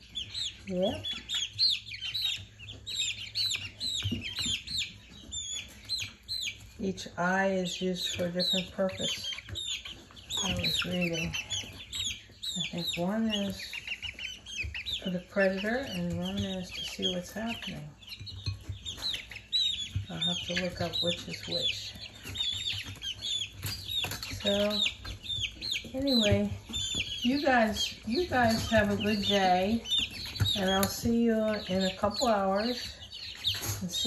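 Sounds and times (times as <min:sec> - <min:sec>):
chicks peeping: 0:00.0 - 0:34.0.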